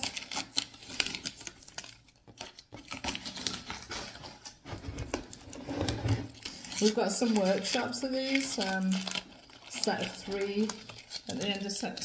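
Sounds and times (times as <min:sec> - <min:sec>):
tape peeling crackles: 0:00.0 - 0:12.0.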